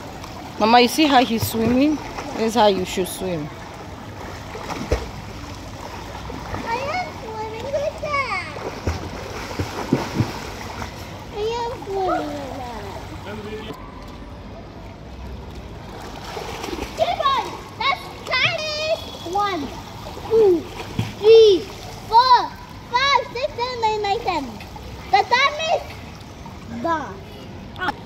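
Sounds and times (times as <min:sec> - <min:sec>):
water splashing from swimming: 0:00.0 - 0:14.2, 0:14.8 - 0:28.0.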